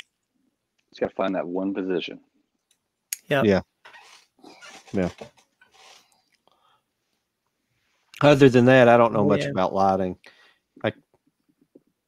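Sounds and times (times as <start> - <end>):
man saying yeah: 3.3 - 3.6, 8.2 - 10.0
soft breathing: 5.8 - 7.1, 10.2 - 10.7.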